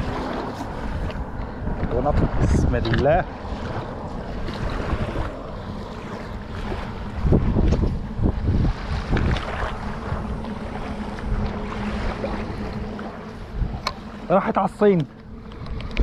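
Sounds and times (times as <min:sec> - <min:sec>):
small waves lapping on shore: 0:00.0 - 0:16.0
wind buffeting microphone: 0:00.0 - 0:16.0.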